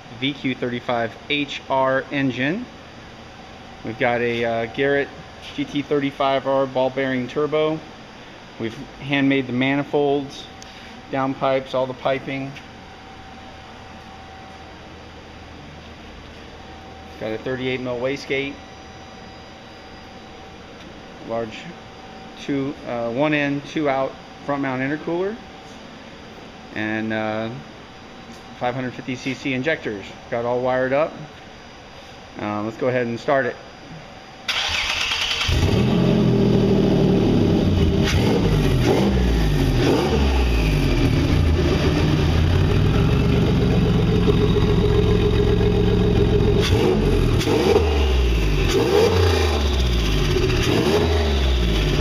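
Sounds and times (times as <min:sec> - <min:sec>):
thin steady whine: 0:00.0 - 0:34.6, 0:35.9 - 0:50.6
faint hum: 0:00.0 - 0:48.8
car engine starting and idling: 0:34.5 - 0:52.0.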